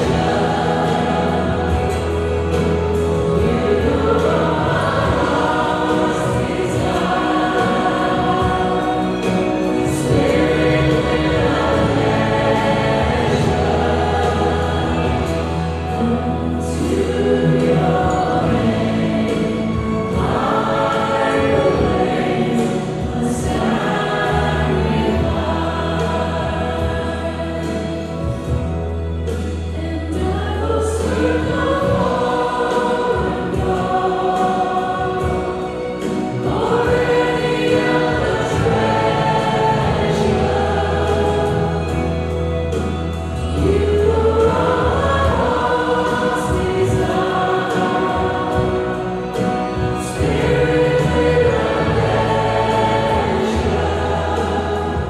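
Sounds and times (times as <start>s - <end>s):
musical accompaniment with low bass: 0.0s - 55.0s
women singing in unison: 0.0s - 55.0s.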